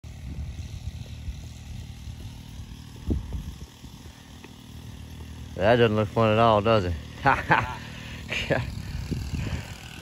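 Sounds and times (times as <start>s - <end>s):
wheelbarrow rolling on asphalt: 0.1s - 10.0s.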